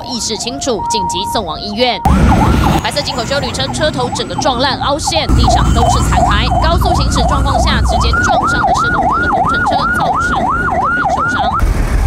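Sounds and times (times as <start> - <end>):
siren yelping: 0.0 - 11.6.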